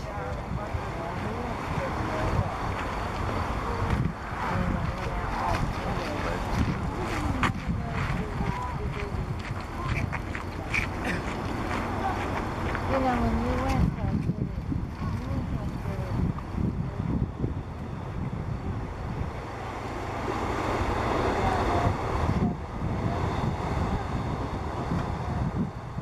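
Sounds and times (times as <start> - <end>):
faint indistinct voices: 0.0 - 26.0
wind buffeting microphone: 0.0 - 26.0.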